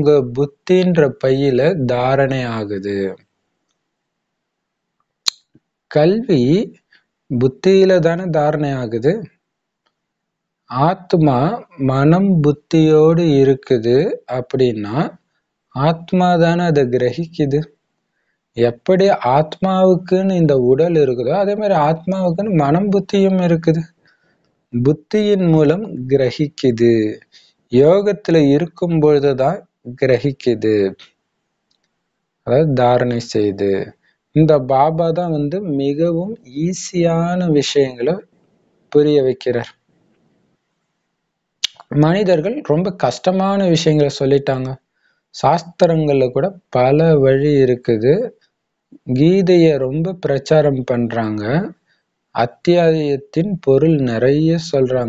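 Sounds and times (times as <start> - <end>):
man speaking: 0.0 - 3.2, 5.9 - 9.3, 10.7 - 15.2, 15.8 - 17.7, 18.6 - 23.9, 24.8 - 31.0, 32.5 - 38.2, 38.9 - 39.7, 41.6 - 44.8, 45.4 - 48.3, 49.0 - 51.8, 52.4 - 55.0.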